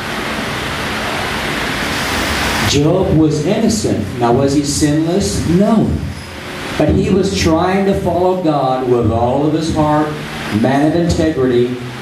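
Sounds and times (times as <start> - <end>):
electric fans running: 0.0 - 12.0.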